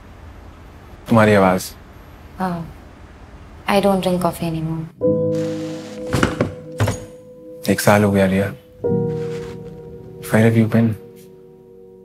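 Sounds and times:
background music with held notes: 0:05.0 - 0:12.0
thumps: 0:06.0 - 0:07.2.

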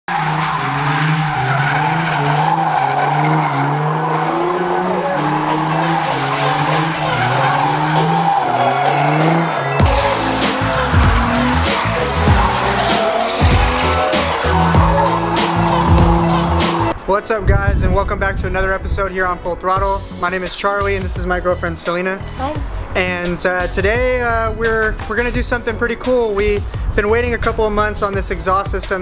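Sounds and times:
car engine running: 0:00.1 - 0:17.0
tires squealing on asphalt: 0:00.1 - 0:17.1
background music with drum beat: 0:09.8 - 0:17.0, 0:22.4 - 0:27.2, 0:28.0 - 0:29.0.

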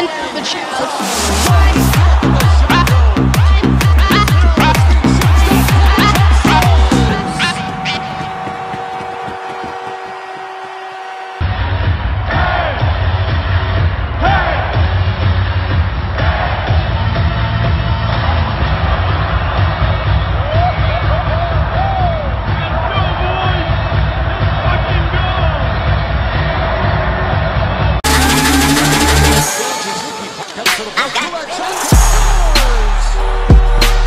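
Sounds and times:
crowd cheering: 0:00.0 - 0:15.0, 0:16.1 - 0:34.0
music with heavy bass beat: 0:01.0 - 0:34.0.

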